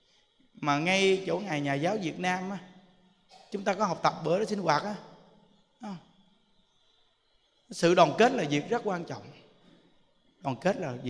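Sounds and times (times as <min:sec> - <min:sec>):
man's voice through microphone: 0:00.6 - 0:02.6, 0:03.6 - 0:05.0, 0:07.7 - 0:09.3, 0:10.5 - 0:11.0.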